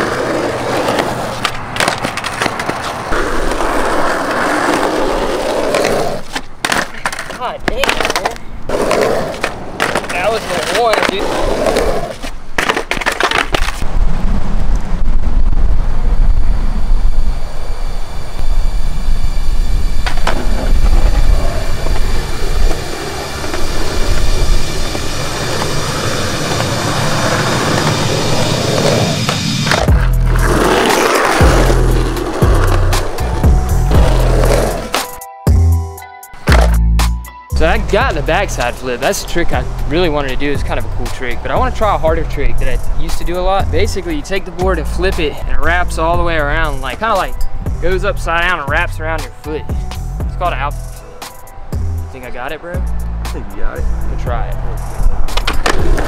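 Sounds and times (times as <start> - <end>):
skateboard clacking: 0.0 - 13.8, 20.0 - 33.4, 34.0 - 35.2, 36.4 - 36.8, 55.0 - 56.0
skateboard wheels rolling on concrete: 0.0 - 35.6, 36.3 - 56.0.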